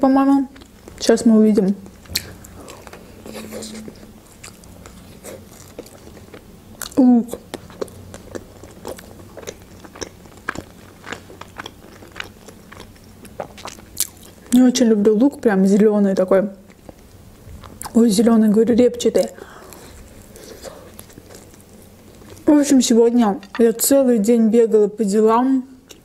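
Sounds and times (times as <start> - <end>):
wet chewing: 1.8 - 14.6, 19.0 - 22.5, 23.2 - 24.0.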